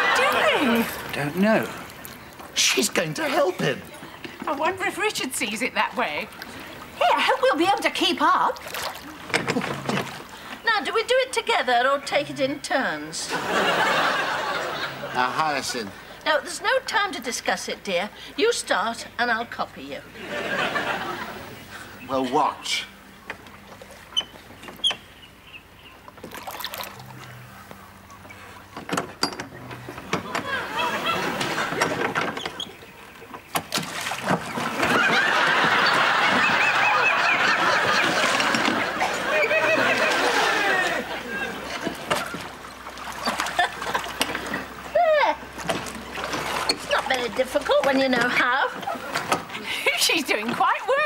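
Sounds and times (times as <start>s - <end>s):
oars splashing and knocking: 0.0s - 11.4s, 22.3s - 25.2s, 25.8s - 51.0s
studio audience laughter: 13.3s - 15.8s, 20.2s - 21.6s, 30.2s - 31.9s, 34.8s - 41.8s.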